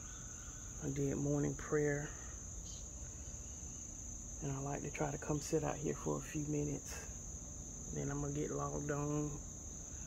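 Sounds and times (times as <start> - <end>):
insect chorus: 0.0 - 10.0.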